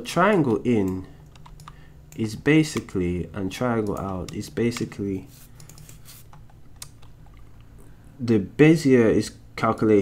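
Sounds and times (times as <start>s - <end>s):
low steady hum: 0.0s - 10.0s
sharp computer clicks: 3.6s - 7.7s.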